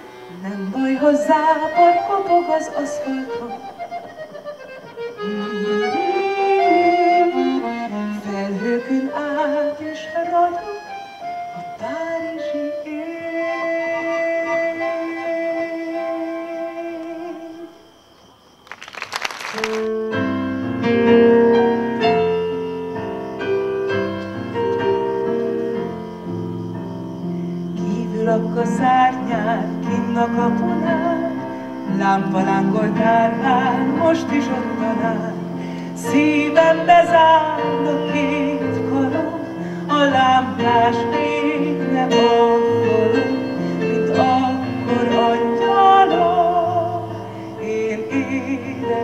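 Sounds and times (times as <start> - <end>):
accordion melody: 1.5 - 12.7.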